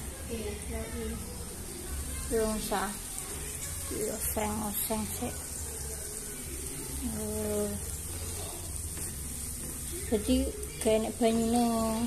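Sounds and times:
spice paste sizzling in a wok: 0:00.0 - 0:12.0
spatula stirring: 0:03.0 - 0:12.0.

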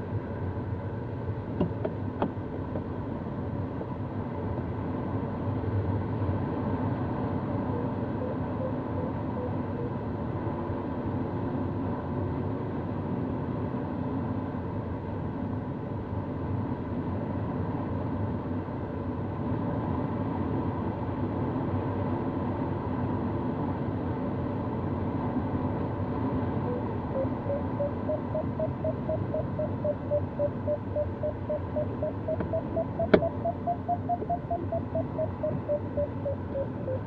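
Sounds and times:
variometer beeping rising pitch: 0:26.7 - 0:37.0.

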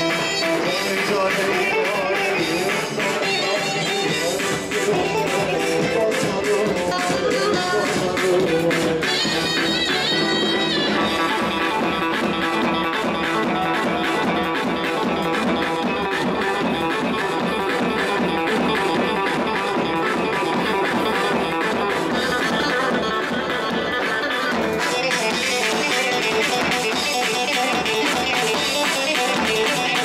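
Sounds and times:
dance music with plucked strings: 0:00.0 - 0:30.0.

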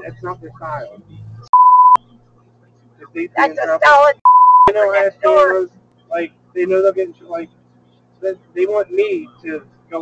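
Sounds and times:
faint low hum: 0:00.0 - 0:10.0
censor bleep: 0:01.5 - 0:02.0, 0:04.2 - 0:04.7.

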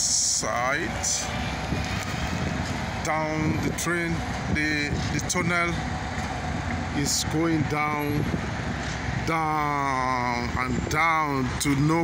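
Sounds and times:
distant traffic and machinery rumble: 0:00.0 - 0:12.0
wind on microphone: 0:00.9 - 0:11.6.

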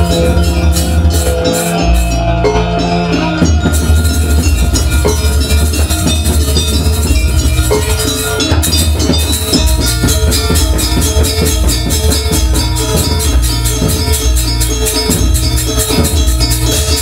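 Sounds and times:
gamelan music: 0:00.0 - 0:17.0.

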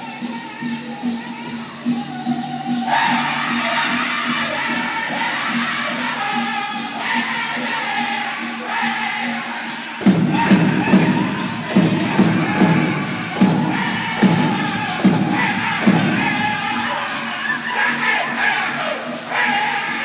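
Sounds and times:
singers' voices: 0:00.0 - 0:20.0
crowd cheering and whooping: 0:02.6 - 0:20.0
big drum heavy beats: 0:09.6 - 0:18.7.

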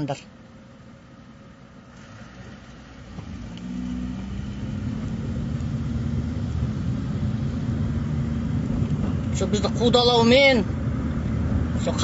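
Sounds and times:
car engine drone: 0:00.0 - 0:12.0
road noise: 0:00.0 - 0:12.0.

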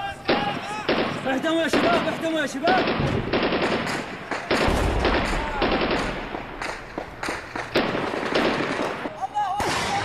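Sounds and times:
automatic gunfire bursts: 0:00.3 - 0:09.1.

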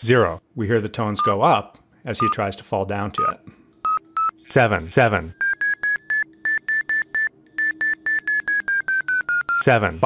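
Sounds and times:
rapid high beeps: 0:03.2 - 0:04.4, 0:05.4 - 0:09.7.

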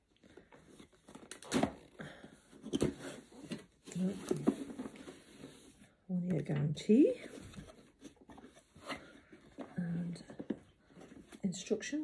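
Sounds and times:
cardboard and paper rustling: 0:00.0 - 0:06.0, 0:06.9 - 0:12.0.

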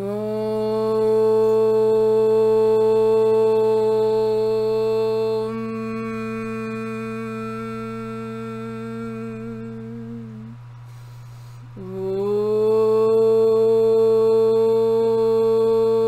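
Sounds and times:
woman singing a long held note: 0:00.0 - 0:16.0.

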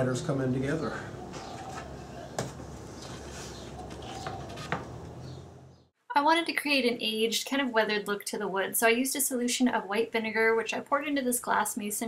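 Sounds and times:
wooden trim boards knocking: 0:01.4 - 0:02.8.

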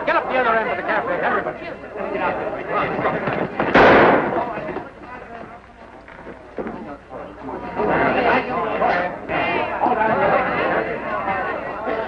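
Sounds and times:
low voices: 0:00.0 - 0:12.0
gunshot: 0:03.6 - 0:04.6.

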